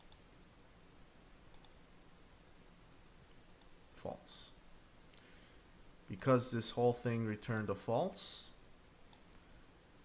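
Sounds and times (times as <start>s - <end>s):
computer mouse clicks: 0.0s - 0.3s, 1.5s - 1.8s, 9.1s - 9.5s.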